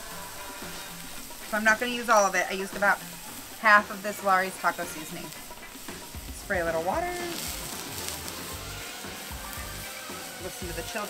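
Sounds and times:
water sizzling on hot griddle: 0:00.0 - 0:11.0.

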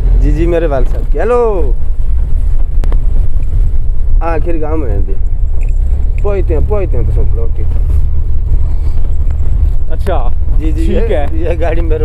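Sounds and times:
vehicle engine and tyres rumble: 0:00.0 - 0:12.0.

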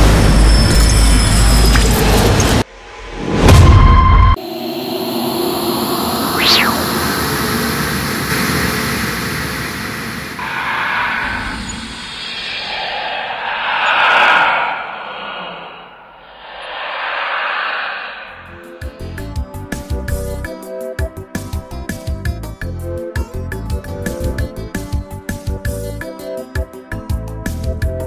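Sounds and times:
dense noisy drone: 0:04.4 - 0:08.6, 0:10.3 - 0:19.6
rising and falling sweep: 0:04.6 - 0:07.6, 0:10.4 - 0:19.4
whooshes: 0:06.2 - 0:07.2, 0:10.4 - 0:19.6.

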